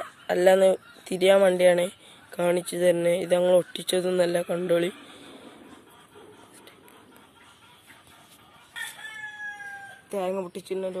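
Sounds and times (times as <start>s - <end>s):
rooster crowing: 8.7s - 10.1s.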